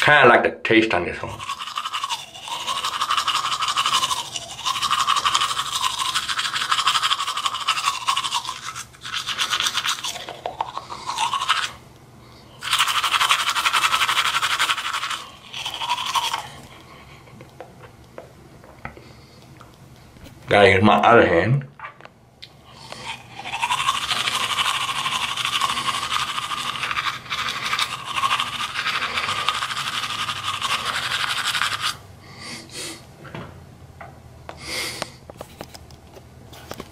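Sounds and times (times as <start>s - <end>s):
toothbrush scrubbing teeth: 1.3s - 11.8s, 12.6s - 17.3s, 22.7s - 32.0s.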